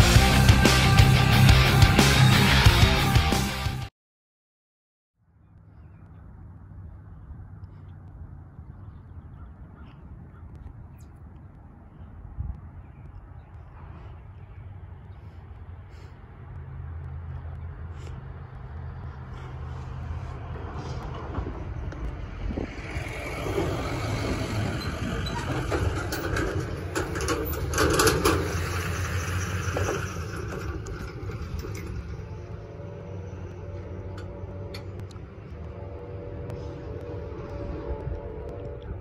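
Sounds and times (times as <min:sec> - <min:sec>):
truck driving past: 0:13.6 - 0:39.0
rattling: 0:21.1 - 0:35.2.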